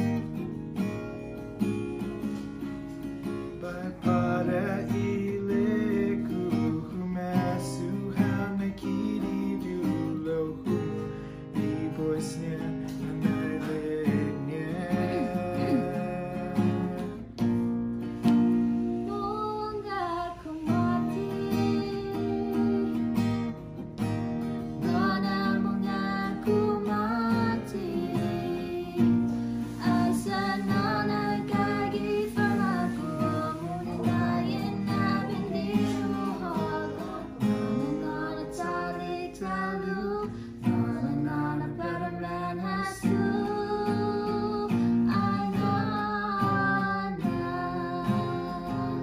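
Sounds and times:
acoustic guitar strumming: 0.0 - 49.0
man and girl singing: 3.5 - 17.4, 18.8 - 23.6, 24.7 - 49.0.

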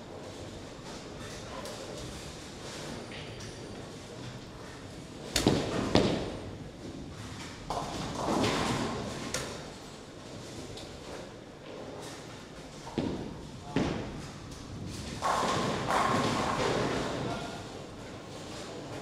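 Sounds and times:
bowling balls thudding on lanes: 5.2 - 6.6, 7.6 - 9.7, 12.8 - 18.0
voices in a big hall: 12.8 - 19.0
bowling pins clattering: 13.0 - 17.6.

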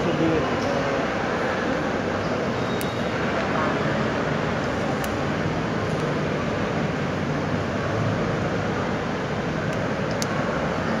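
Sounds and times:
church interior hiss and hum: 0.0 - 11.0.

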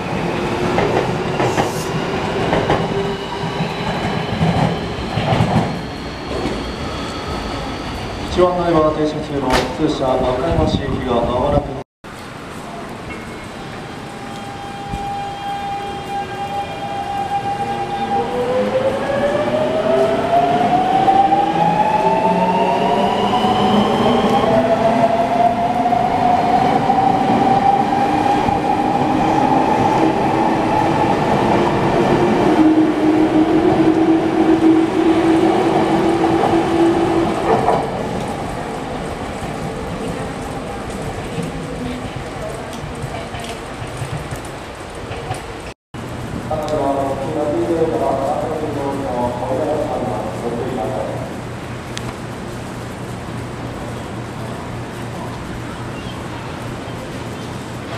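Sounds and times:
electric train accelerating past: 13.1 - 42.2.

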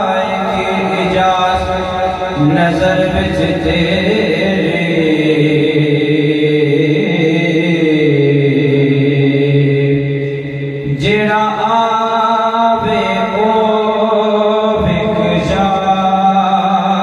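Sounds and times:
man singing into a microphone: 0.0 - 17.0.

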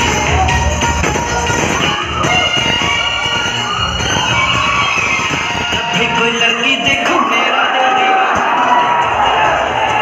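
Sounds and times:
loud dance music over sound system: 0.0 - 10.0.

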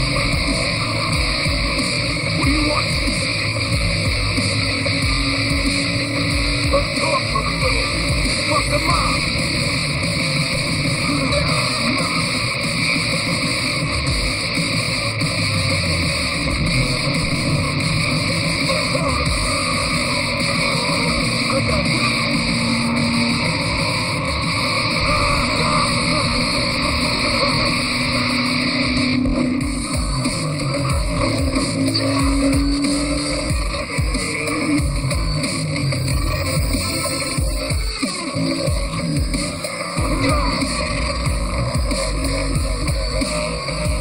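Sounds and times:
action film music score: 0.0 - 44.0
speeding car engines: 0.0 - 44.0.

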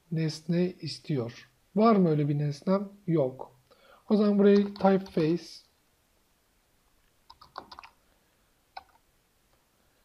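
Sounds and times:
keyboard keystrokes: 7.3 - 8.0.

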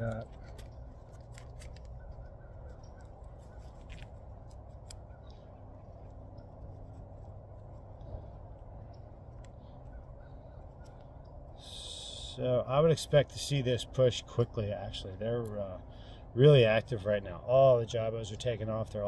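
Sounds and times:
tape creaking while wound: 0.0 - 5.4
low background rumble: 0.0 - 19.0.

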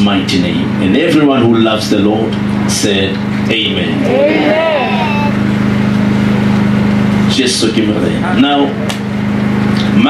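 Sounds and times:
steady low hum: 0.0 - 10.0
voice trailing off: 3.9 - 5.4.

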